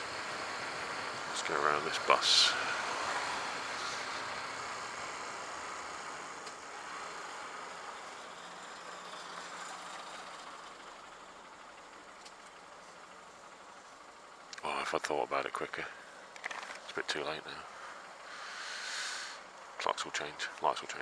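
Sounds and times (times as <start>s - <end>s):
wind and road rush: 0.0s - 7.7s
faint motorcycle engine: 0.0s - 21.0s.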